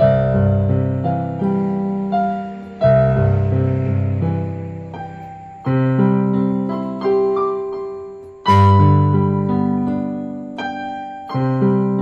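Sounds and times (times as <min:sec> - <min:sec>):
piano melody with chords: 0:00.0 - 0:12.0.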